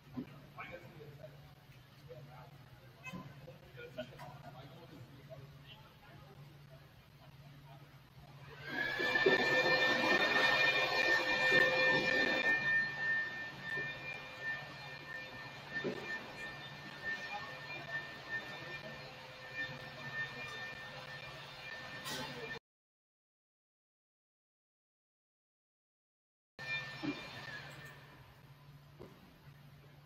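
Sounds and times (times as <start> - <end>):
high machine whine: 0.0 - 22.6, 26.6 - 30.0
rushing noise: 8.5 - 22.4.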